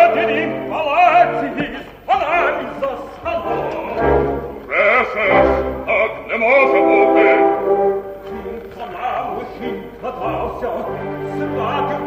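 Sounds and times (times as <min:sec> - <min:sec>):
male opera singer singing: 0:00.0 - 0:12.0.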